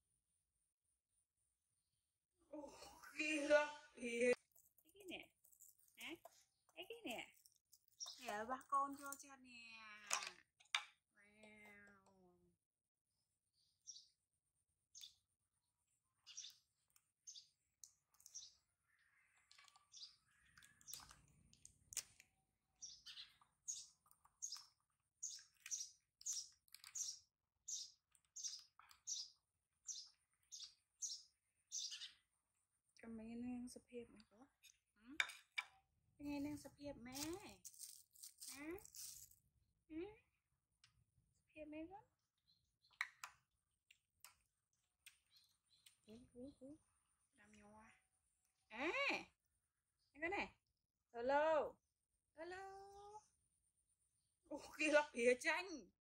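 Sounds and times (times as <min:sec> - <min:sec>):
high-pitched chirping calls: 0:22.8 - 0:32.2.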